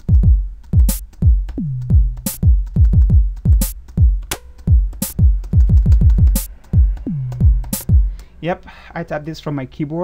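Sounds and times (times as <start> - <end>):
deep electronic kick drums: 0.0 - 8.2.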